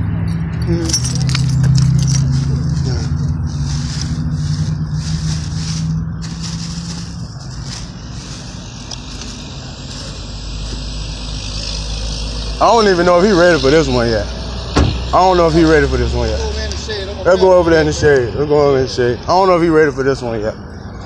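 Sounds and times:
car engine humming: 0.0s - 21.0s.

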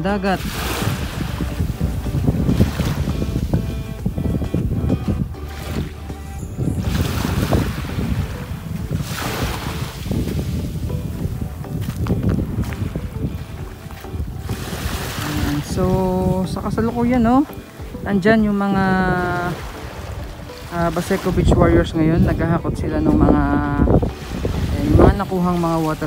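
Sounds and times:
small waves on gravelly beach: 0.0s - 3.6s, 5.5s - 22.4s
wind buffeting microphone: 0.0s - 26.0s.

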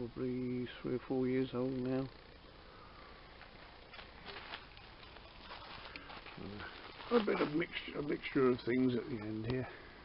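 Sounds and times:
footsteps on gravel: 3.4s - 8.0s.

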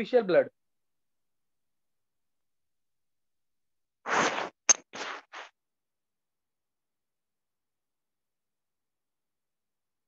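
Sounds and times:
scratchy rubbing on microphone: 4.1s - 5.5s.

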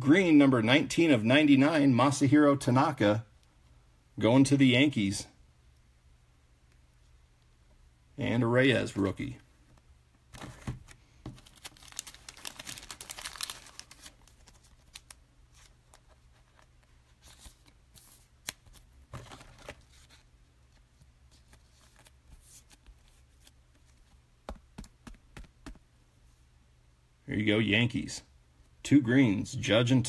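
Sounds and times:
faint rustling of cards: 6.6s - 26.5s.

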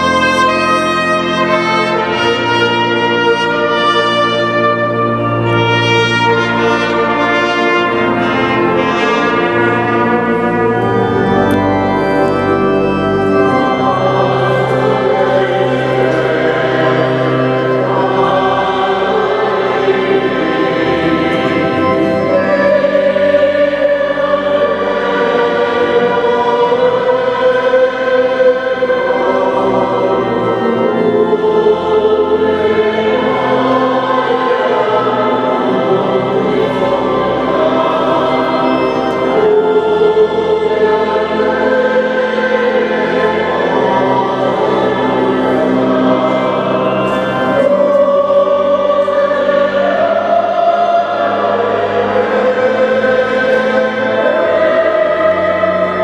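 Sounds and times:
choir singing sacred music: 0.0s - 56.0s.

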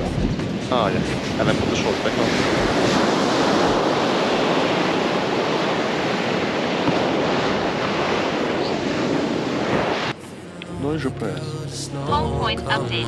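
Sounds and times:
ocean waves breaking on beach: 0.0s - 10.8s.

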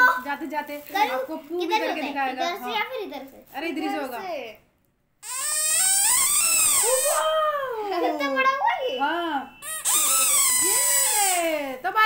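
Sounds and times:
toy whistle wailing tone: 5.2s - 7.4s, 9.6s - 11.4s.

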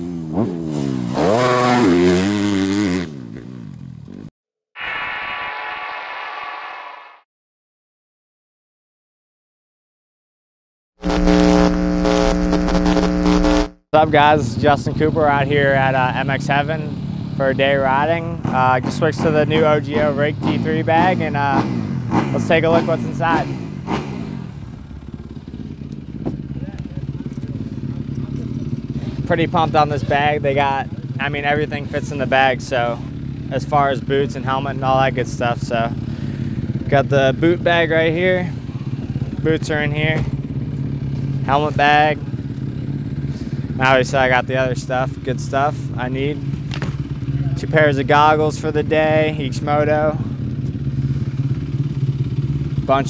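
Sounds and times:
motorbike engines running: 0.0s - 4.3s, 14.0s - 53.0s.

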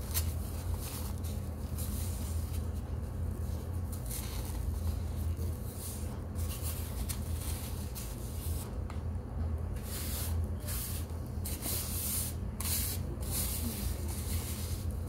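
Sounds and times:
steady low hum: 0.0s - 15.0s
fingers scraping powder on a plate: 9.8s - 15.0s.

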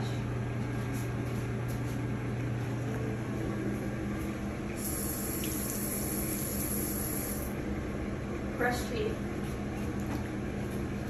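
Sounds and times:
steady low hum: 0.0s - 11.0s
water running from sink tap: 4.7s - 7.5s.

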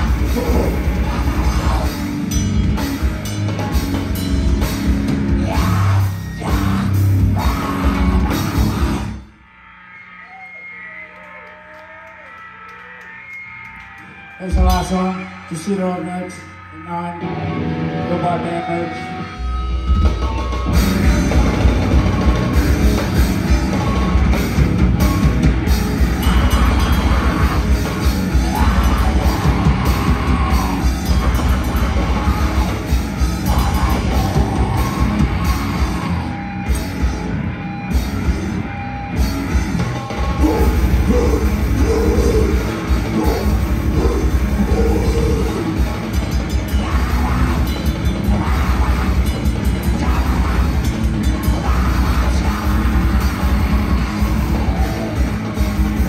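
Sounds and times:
grindcore band playing: 0.0s - 9.2s, 12.9s - 15.6s, 17.2s - 56.0s.

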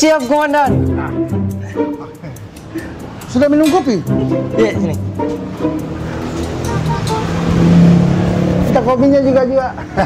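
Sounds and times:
vehicle engine passing by: 4.6s - 10.0s.

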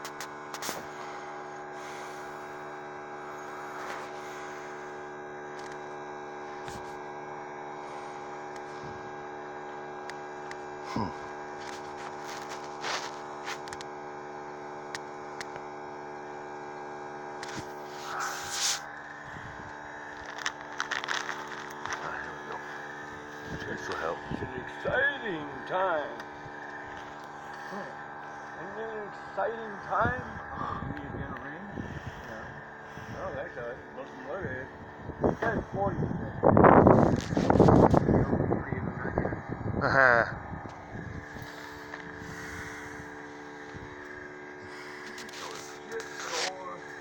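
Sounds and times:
electrical hum: 0.0s - 47.0s.

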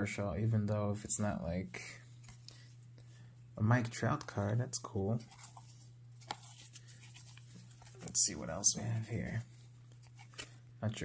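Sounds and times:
cards clicking and rubbing: 5.2s - 10.6s.

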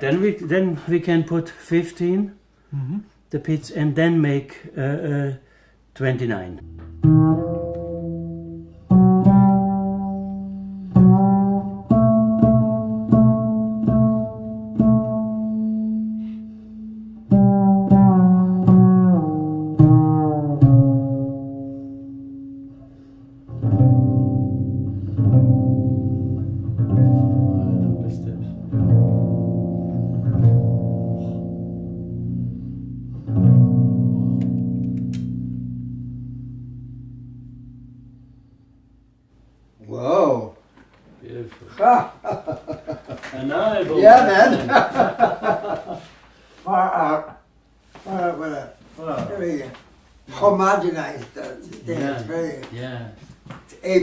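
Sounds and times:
double bass notes: 6.3s - 40.2s.

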